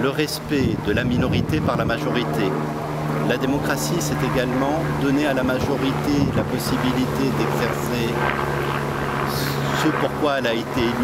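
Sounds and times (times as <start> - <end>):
low mechanical drone: 0.0 - 11.0.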